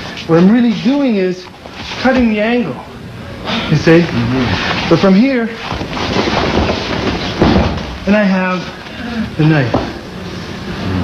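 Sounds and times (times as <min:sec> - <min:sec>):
uniforms rustling and shuffling: 0:00.0 - 0:02.8, 0:04.5 - 0:10.5.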